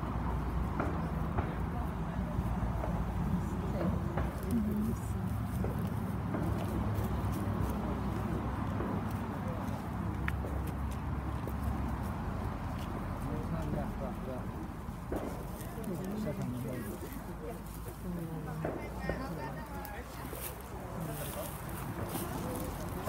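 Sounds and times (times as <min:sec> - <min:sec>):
indistinct chatter of people: 0:00.0 - 0:23.0.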